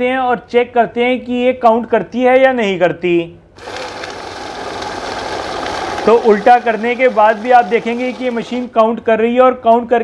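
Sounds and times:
note counting machine whirring: 3.6s - 8.8s.

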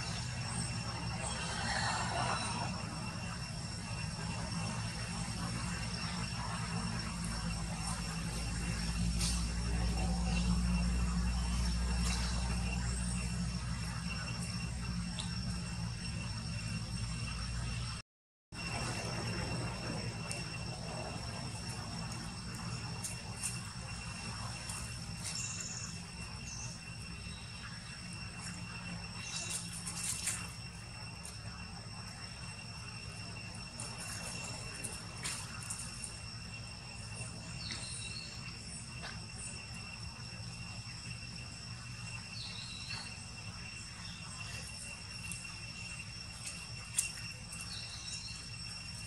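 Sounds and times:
high-pitched insect drone: 0.0s - 18.0s, 18.6s - 49.0s
low background rumble: 0.0s - 18.0s.

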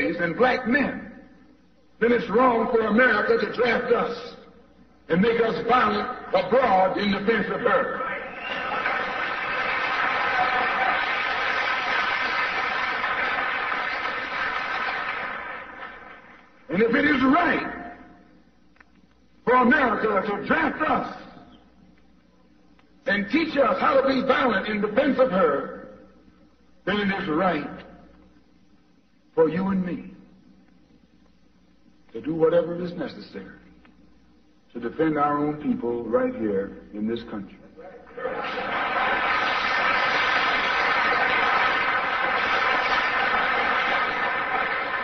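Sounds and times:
faint steady hiss: 0.0s - 45.0s
man speaking: 2.0s - 8.3s, 16.7s - 18.1s, 23.0s - 26.0s, 26.8s - 27.9s
audience applauding: 8.2s - 16.4s, 38.1s - 45.0s.

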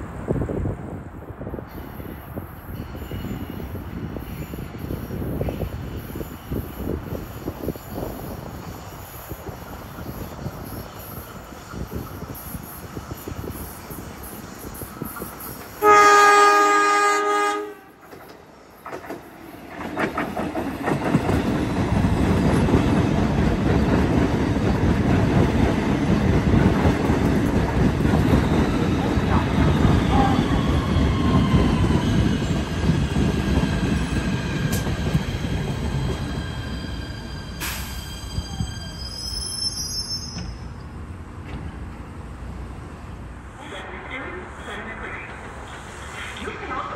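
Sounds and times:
train wheels and motors rumbling: 0.0s - 15.8s, 17.8s - 46.9s
train horn blast: 15.8s - 18.0s.

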